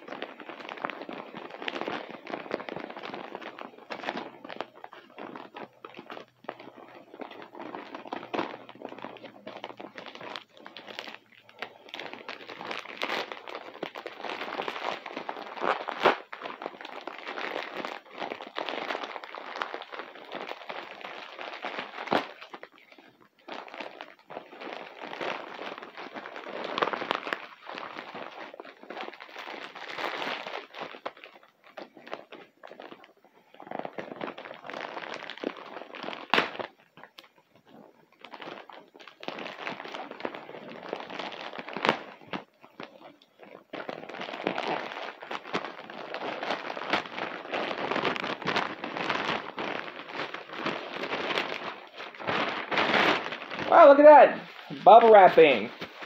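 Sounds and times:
plastic packaging crinkling: 0:00.0 - 0:56.0.

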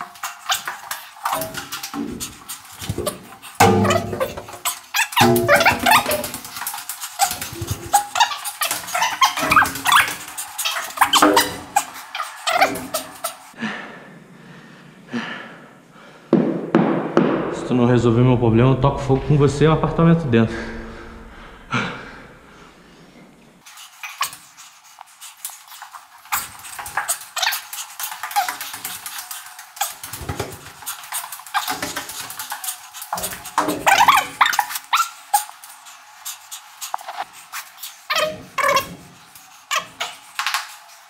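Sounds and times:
sped-up footsteps clicks and knocks: 0:00.0 - 0:13.5, 0:23.7 - 0:41.0.

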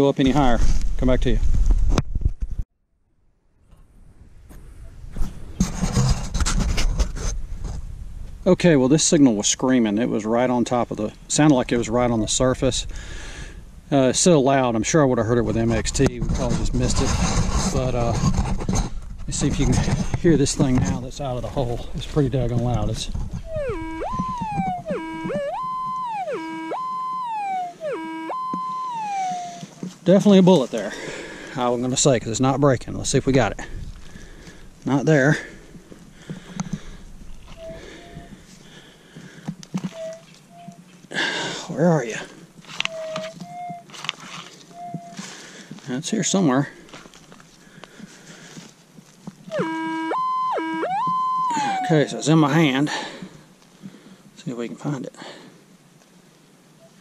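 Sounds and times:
rubbing and scraping noise: 0:05.1 - 0:07.9, 0:15.4 - 0:30.9, 0:42.6 - 0:45.4
metal detector tone: 0:23.4 - 0:29.7, 0:39.9 - 0:40.8, 0:42.8 - 0:43.9, 0:44.7 - 0:45.2, 0:49.5 - 0:52.2.

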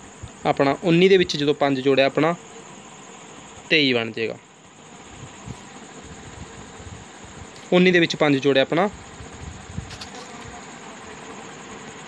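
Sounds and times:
faint buzzing hum: 0:00.0 - 0:12.0.

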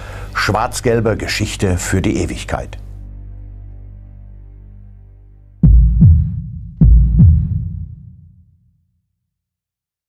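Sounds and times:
low music bed: 0:00.0 - 0:08.1
heartbeat thumps: 0:05.6 - 0:08.3.

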